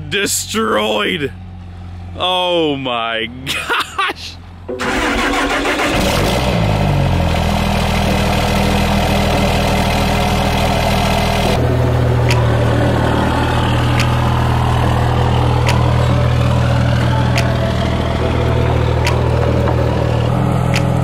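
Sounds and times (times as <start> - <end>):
diesel engine idling: 0.0 - 21.0.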